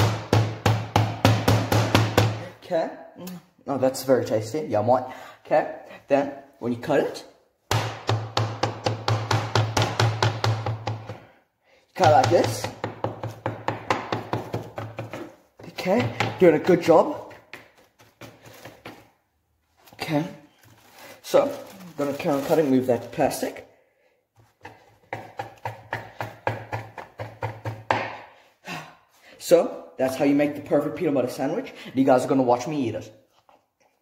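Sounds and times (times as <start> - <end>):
knife chopping on plastic board: 0.0 - 2.5, 7.7 - 11.4, 12.0 - 19.0, 24.4 - 28.3.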